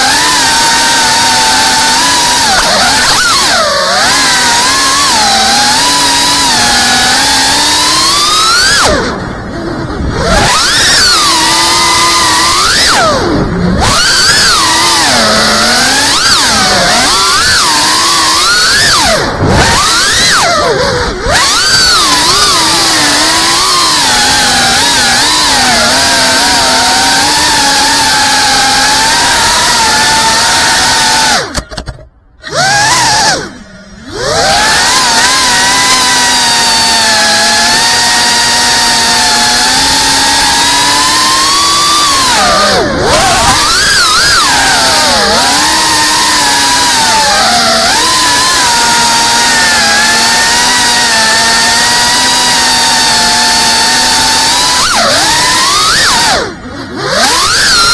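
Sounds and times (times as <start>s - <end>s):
quadcopter motors whining: 0.0s - 57.9s.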